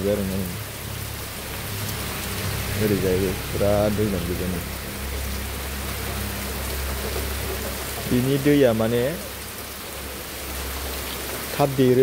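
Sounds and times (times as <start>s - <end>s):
heavy rain on puddles: 0.0s - 12.0s.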